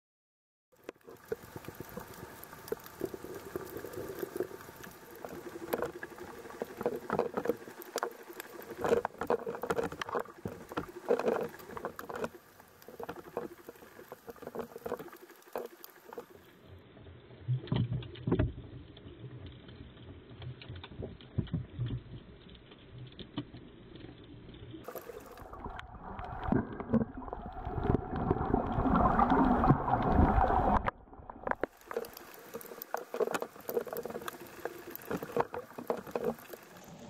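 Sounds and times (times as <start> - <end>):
underwater crackles and clicks: 0.7 - 37.0
underwater water rush: 0.8 - 16.8, 24.8 - 37.0.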